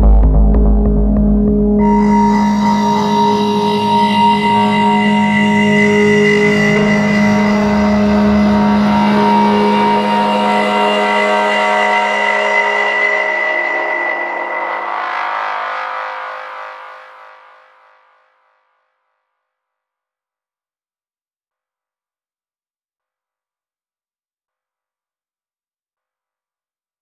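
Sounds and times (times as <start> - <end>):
distorted synth drone: 0.0 - 18.5.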